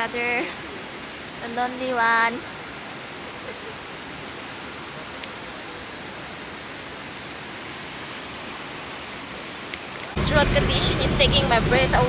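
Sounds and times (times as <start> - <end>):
river flowing over gravel: 0.0 - 12.0.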